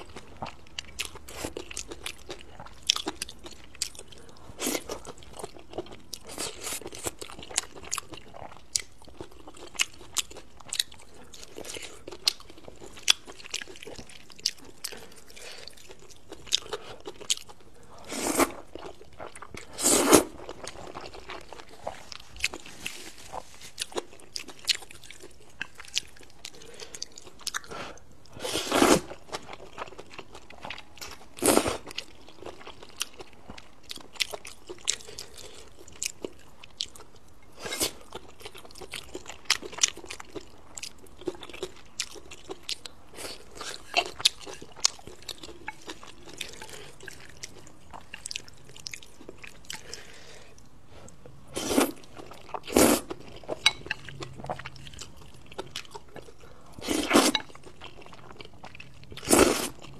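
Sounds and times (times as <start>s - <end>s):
chewing and slurping noodles: 0.0s - 59.9s.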